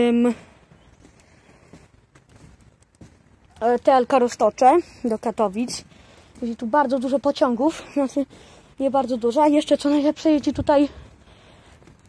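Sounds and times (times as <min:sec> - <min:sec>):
faint footsteps on walkway: 0:00.0 - 0:12.0.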